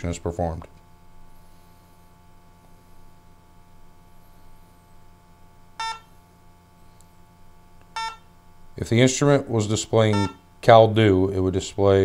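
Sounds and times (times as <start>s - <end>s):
faint low hum: 0.0s - 12.0s
short electronic beeps: 5.8s - 6.1s, 8.0s - 8.3s, 10.1s - 10.4s.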